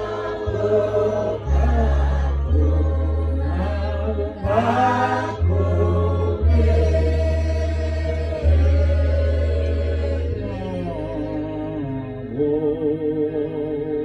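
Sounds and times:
low bass notes: 0.0 - 14.0
voices singing slow hymn: 0.0 - 14.0.

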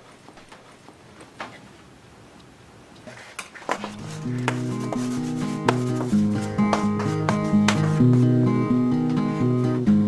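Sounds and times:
acoustic guitar strumming chords: 3.9 - 10.0.

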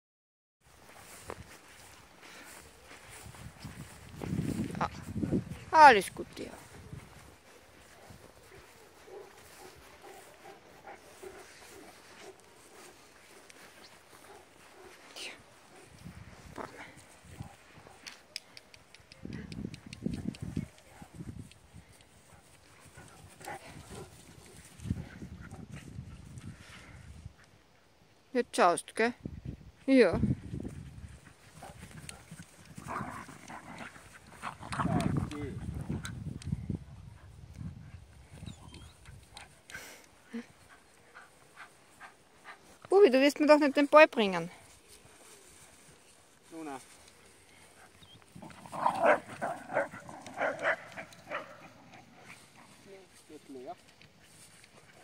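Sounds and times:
dogs moving on grass: 0.7 - 26.7, 30.5 - 36.4, 38.1 - 55.0
quick run of clicks: 18.0 - 20.9
light ticks: 18.0 - 22.2.

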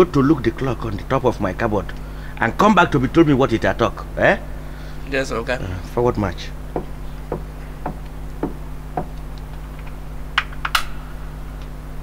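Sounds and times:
steady low hum: 0.0 - 12.0
soft knock: 6.8 - 9.2.

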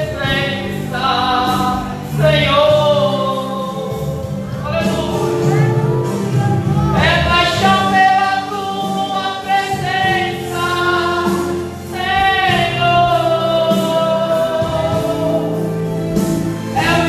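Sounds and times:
gospel hymn singing: 0.0 - 17.0
instrumental accompaniment: 0.0 - 17.0
steady bass line: 0.0 - 17.0.

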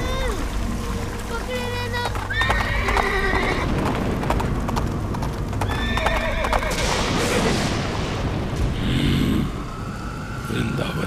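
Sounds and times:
storm noise: 0.0 - 11.0
galloping hoofbeats: 1.8 - 7.4
horse whinnying: 2.3 - 3.7, 5.6 - 6.8.

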